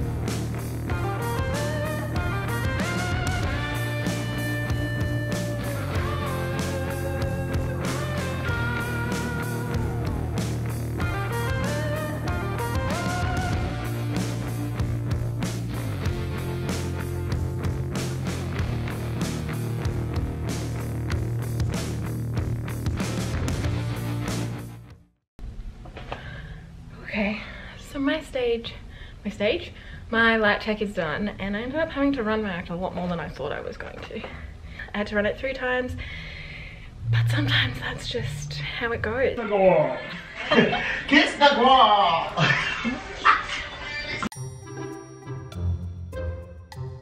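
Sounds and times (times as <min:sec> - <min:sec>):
electric guitar lead: 0:00.0 - 0:21.3
bass guitar: 0:00.0 - 0:25.1, 0:36.9 - 0:39.6
drums: 0:00.0 - 0:26.4.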